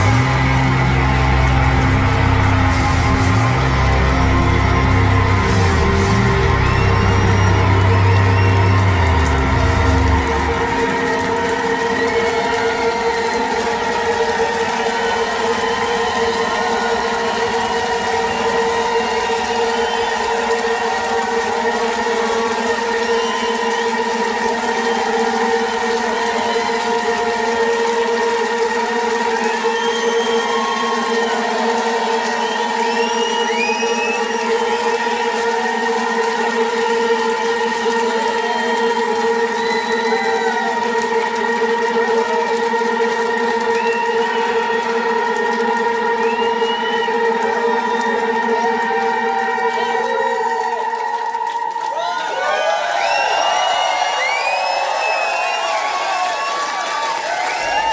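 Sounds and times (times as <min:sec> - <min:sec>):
rock band droning chord: 0:00.0 - 0:11.9
bass drone: 0:00.0 - 0:50.9.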